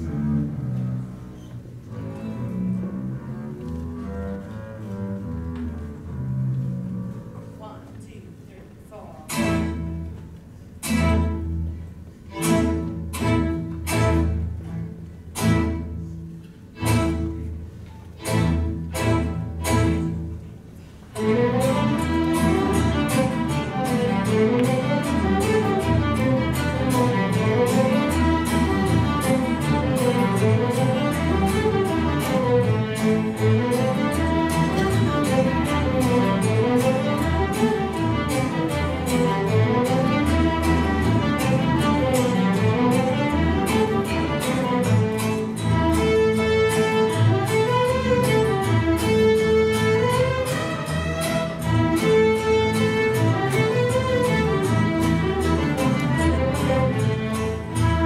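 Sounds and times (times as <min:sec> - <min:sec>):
string ensemble accented chords: 0:09.3 - 0:58.0
fast fiddle tune: 0:21.2 - 0:58.0.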